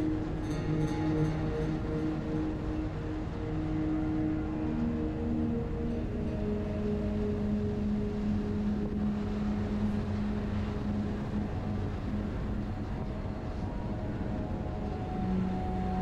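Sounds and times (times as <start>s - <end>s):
wind on microphone: 0.0s - 16.0s.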